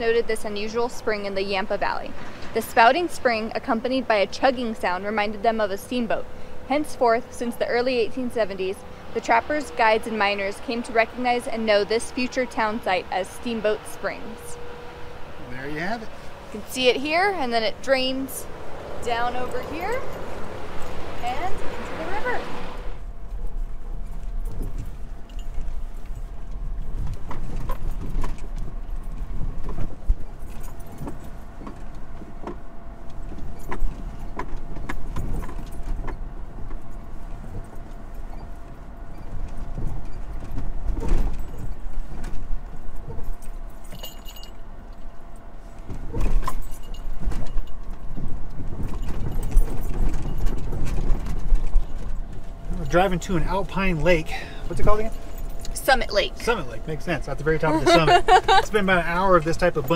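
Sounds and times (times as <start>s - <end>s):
car engine and tyres rumbling: 0.0s - 59.9s
car body rattling over bumps: 23.1s - 59.9s.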